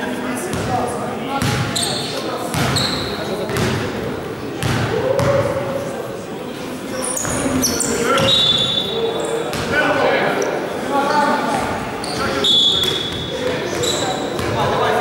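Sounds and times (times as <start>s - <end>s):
players' voices: 0.0s - 15.0s
sneakers squeaking: 1.4s - 3.9s, 6.9s - 15.0s
ball bouncing on court floor: 2.5s - 3.8s, 4.6s - 5.4s.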